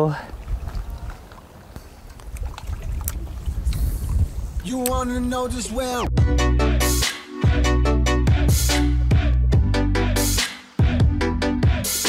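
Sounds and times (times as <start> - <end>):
wind buffeting microphone: 0.2 - 6.1.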